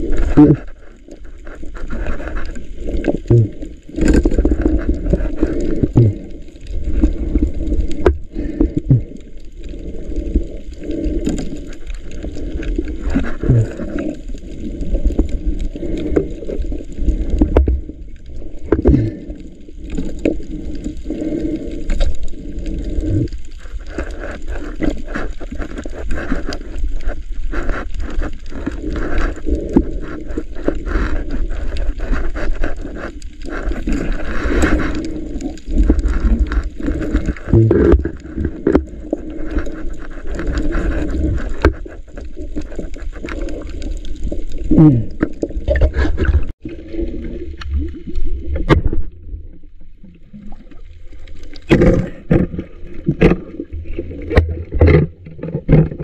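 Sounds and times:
muffled underwater rumble: 0:00.0 - 0:56.0.

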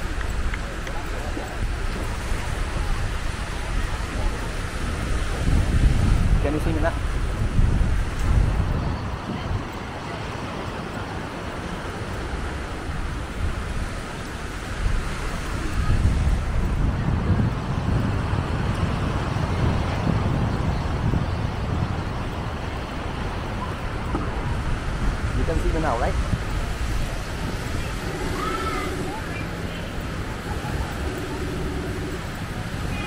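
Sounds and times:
wind buffeting microphone: 0:00.0 - 0:33.0.

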